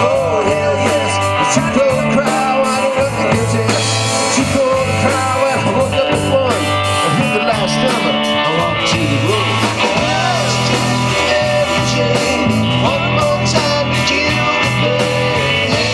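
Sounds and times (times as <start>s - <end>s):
bass guitar: 0.0s - 15.9s
drum kit with cymbal hits: 0.0s - 15.9s
electric guitar lead bending: 0.0s - 15.9s.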